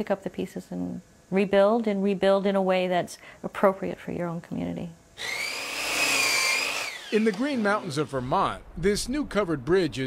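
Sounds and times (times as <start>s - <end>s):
high-pitched motor whine: 5.2s - 8.8s.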